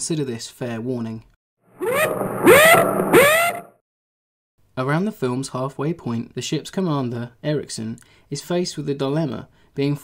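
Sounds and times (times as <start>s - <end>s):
swooping tones: 1.8s - 3.8s.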